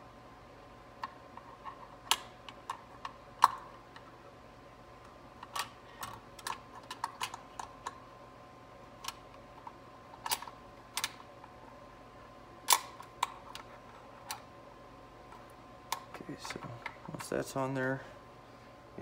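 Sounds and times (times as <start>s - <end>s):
faint steady high hum: 0.0s - 19.0s.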